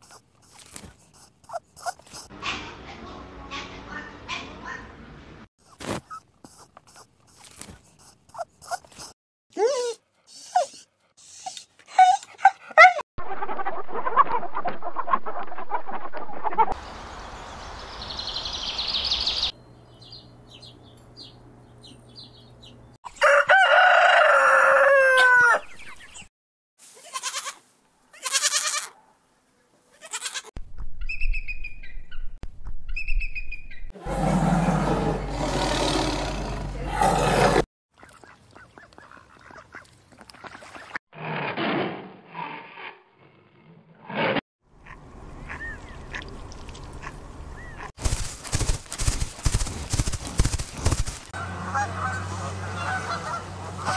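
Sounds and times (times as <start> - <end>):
rooster crowing: 23.2 - 25.6, 51.4 - 53.9
animal calls: 34.0 - 37.6.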